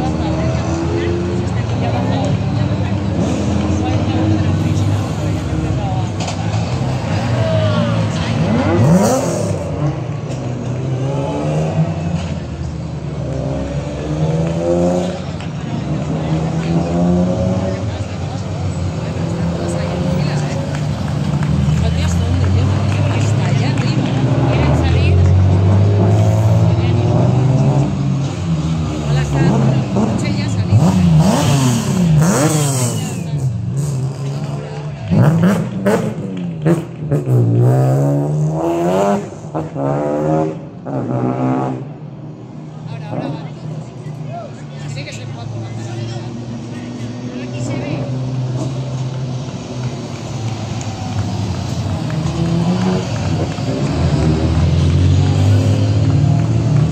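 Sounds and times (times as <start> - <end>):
rally car engines revving: 0.0 - 56.9.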